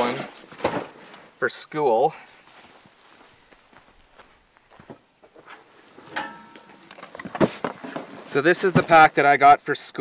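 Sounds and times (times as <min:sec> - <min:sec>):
footsteps on grass: 0:02.1 - 0:06.7.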